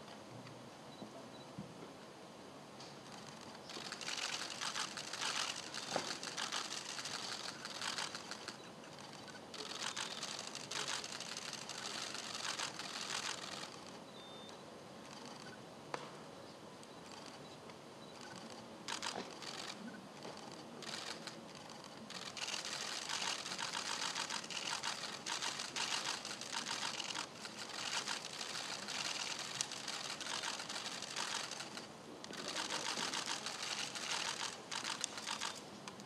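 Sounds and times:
camera shutters clicking: 0:03.1 - 0:15.5, 0:18.2 - 0:36.0.

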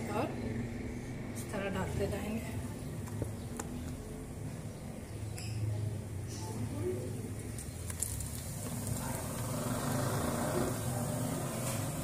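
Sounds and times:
eggplant slices deep-frying in oil: 0:05.8 - 0:12.0.

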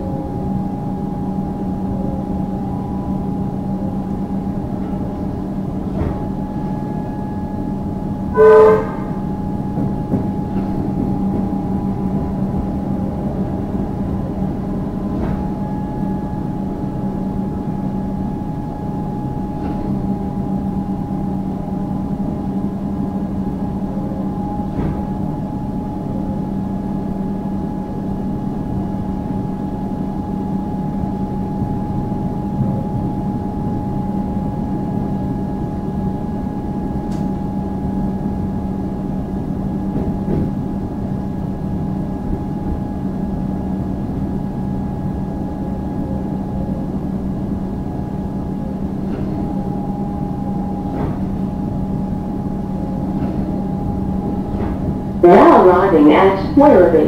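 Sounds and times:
electrical hum: 0:00.0 - 0:57.0
train interior rumble: 0:00.0 - 0:57.0.

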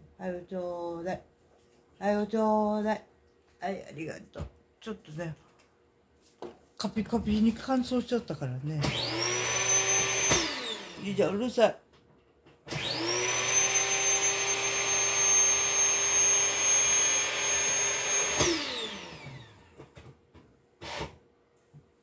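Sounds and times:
electric motor whine: 0:08.9 - 0:11.2, 0:12.7 - 0:19.9.

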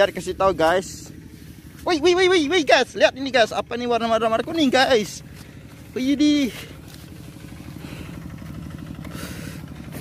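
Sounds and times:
small engine humming: 0:00.0 - 0:10.0.

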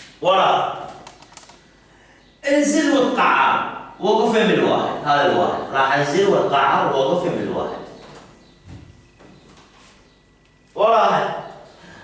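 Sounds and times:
man speaking: 0:00.2 - 0:01.0, 0:02.4 - 0:08.0, 0:10.8 - 0:11.6.

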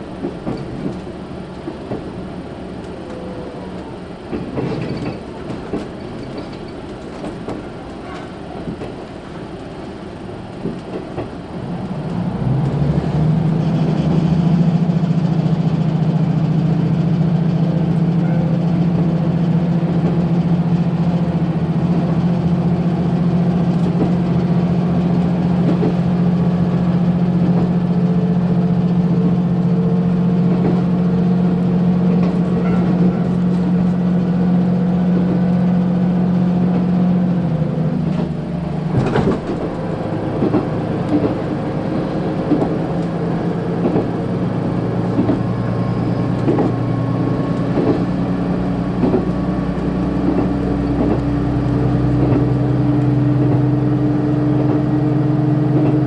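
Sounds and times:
diesel railcar engine droning: 0:00.0 - 0:56.0.

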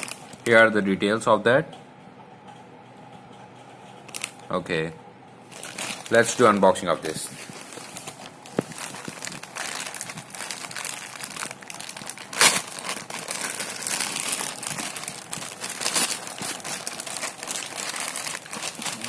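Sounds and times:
plastic bag crinkling: 0:00.0 - 0:00.5, 0:04.1 - 0:04.4, 0:05.4 - 0:19.0.

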